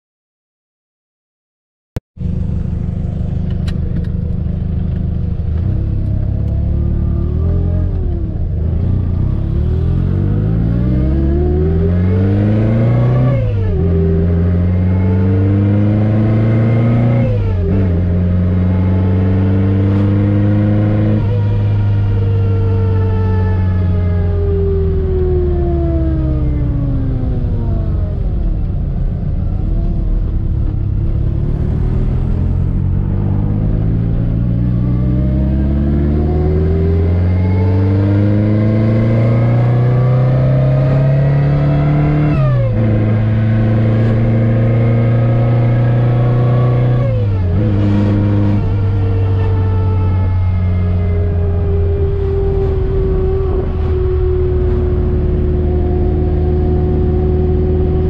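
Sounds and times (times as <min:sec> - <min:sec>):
supercharged car engine accelerating: 0:02.2 - 0:58.0
supercharger whine: 0:02.2 - 0:58.0.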